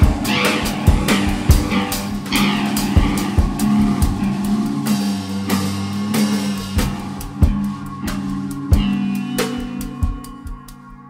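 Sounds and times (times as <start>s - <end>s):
drum kit hitting irregularly: 0.0s - 11.0s
low drone: 0.0s - 11.0s
swooping high electronic tones: 0.0s - 11.0s.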